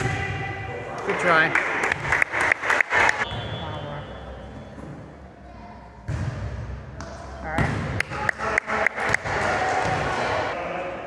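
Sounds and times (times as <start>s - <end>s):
players and spectators voices: 0.0s - 11.0s.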